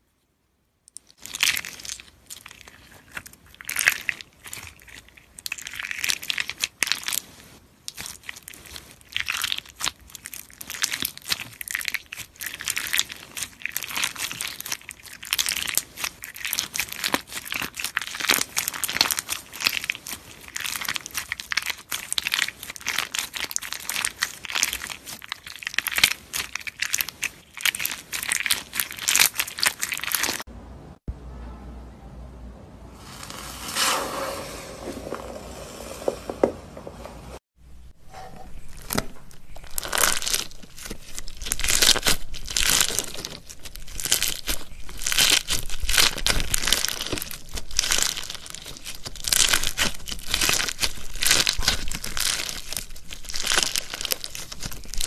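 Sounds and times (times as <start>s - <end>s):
slime with plastic gems crackling: 0.9s - 30.5s, 38.2s - 55.0s.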